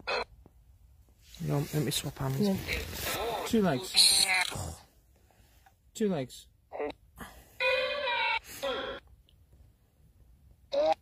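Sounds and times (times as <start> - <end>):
high-pitched voice calling: 2.6 - 4.8, 7.6 - 9.0.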